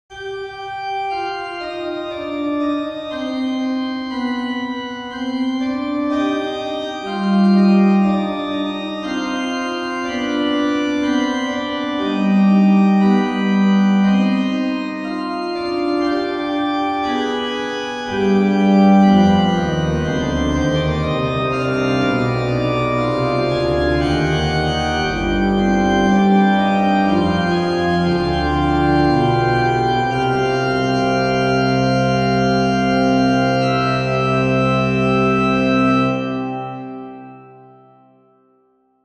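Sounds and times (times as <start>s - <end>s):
pipe organ fugue: 0.1s - 38.1s.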